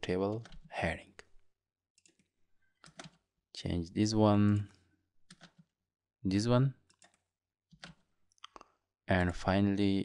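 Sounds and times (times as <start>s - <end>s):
faint keyboard and mouse clicks: 2.0s - 3.2s, 4.4s - 5.7s, 6.8s - 9.5s.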